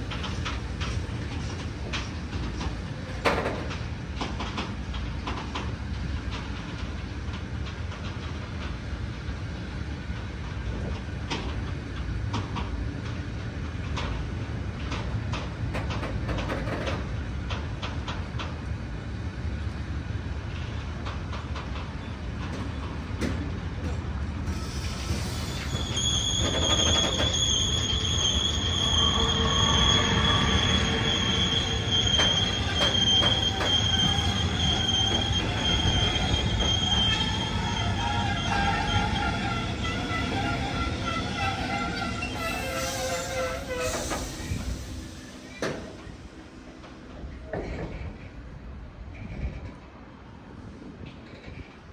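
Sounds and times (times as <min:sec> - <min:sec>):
train wheels clicking over rail joints: 0:00.0 - 0:18.8, 0:20.4 - 0:48.4
train rumble: 0:00.0 - 0:51.9
high-pitched wheel squeal: 0:24.5 - 0:44.9.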